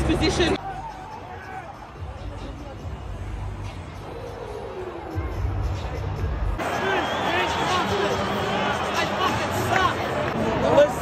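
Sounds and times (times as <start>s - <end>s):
music over loudspeakers: 0.0s - 6.7s
stadium crowd voices: 0.0s - 11.0s.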